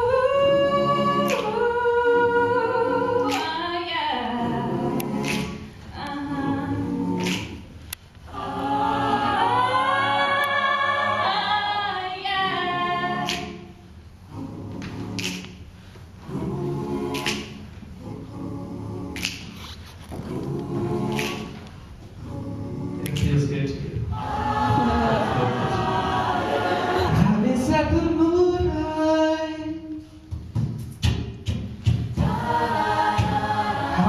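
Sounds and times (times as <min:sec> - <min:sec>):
choir singing a cappella: 0:00.0 - 0:34.0.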